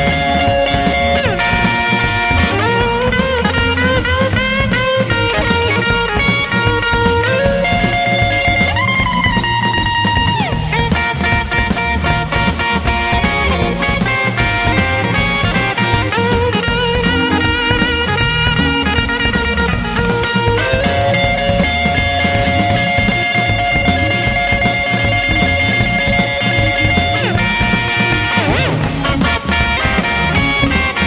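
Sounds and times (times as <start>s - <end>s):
bass: 0.0s - 31.0s
electric guitar solo: 0.0s - 31.0s
steady drum beat: 0.0s - 31.0s.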